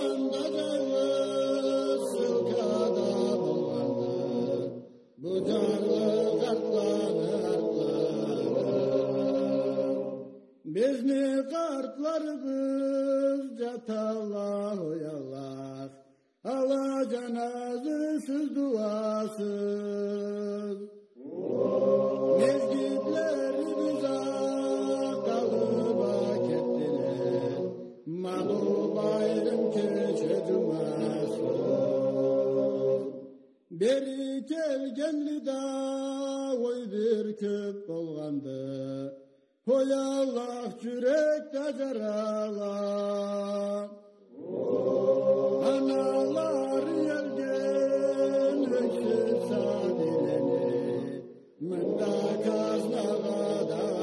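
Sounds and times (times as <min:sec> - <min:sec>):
unaccompanied singing: 0:00.0 - 0:15.3, 0:16.5 - 0:35.6, 0:40.8 - 0:54.0.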